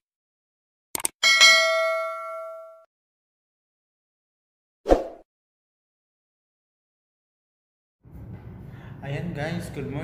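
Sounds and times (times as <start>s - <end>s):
notification bell ding: 1.2s - 2.9s.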